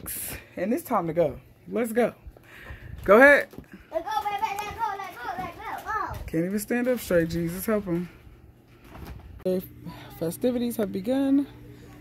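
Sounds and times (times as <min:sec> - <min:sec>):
child shouting: 0:03.9 - 0:06.2.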